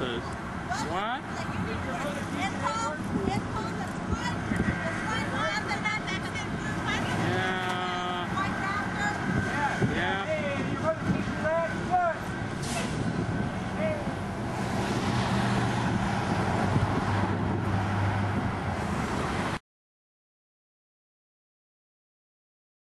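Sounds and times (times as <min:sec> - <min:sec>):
low engine hum of traffic: 0:00.0 - 0:19.6.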